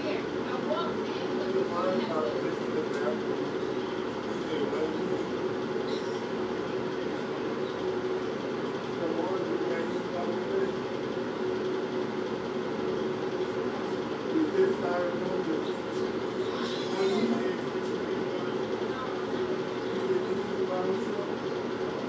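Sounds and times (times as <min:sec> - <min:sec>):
muffled voices: 0:00.0 - 0:22.0
steady low hum: 0:00.0 - 0:22.0.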